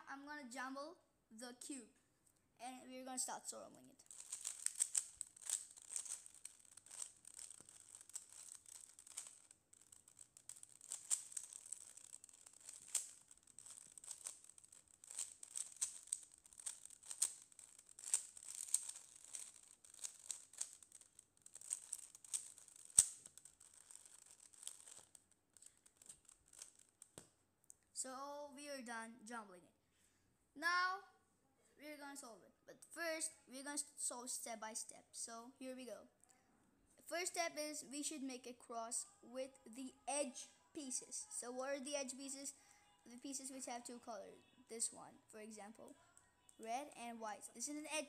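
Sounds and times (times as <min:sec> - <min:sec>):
puzzle cube clicking and rattling: 0:04.0 - 0:27.3.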